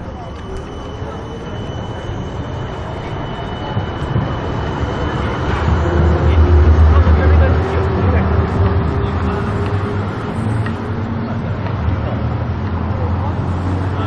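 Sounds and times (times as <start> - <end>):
street noise: 0.0 - 14.0
tram rumbling past: 0.0 - 14.0.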